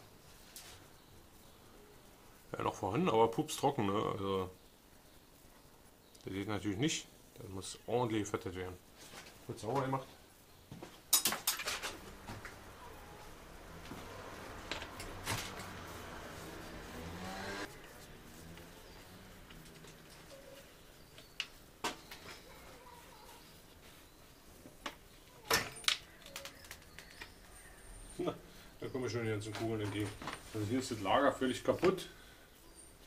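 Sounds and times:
hissing rustle: 0:00.0 - 0:33.0.

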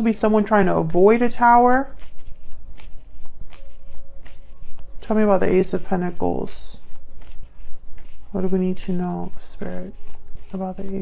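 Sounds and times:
cards being shuffled: 0:00.3 - 0:11.0.

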